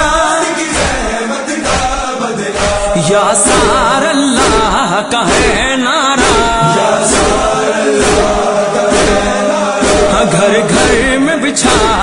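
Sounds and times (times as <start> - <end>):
devotional chant sung in chorus: 0.0 - 12.0
steady beat: 0.0 - 12.0.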